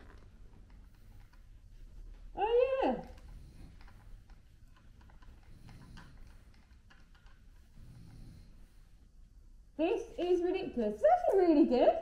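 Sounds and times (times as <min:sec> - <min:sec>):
mask rustling and clicks: 0:00.0 - 0:09.1.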